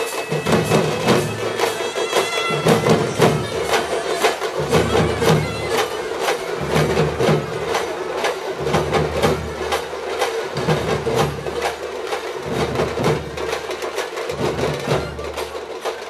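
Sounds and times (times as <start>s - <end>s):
drums beaten in steady rhythm: 0.0s - 16.0s.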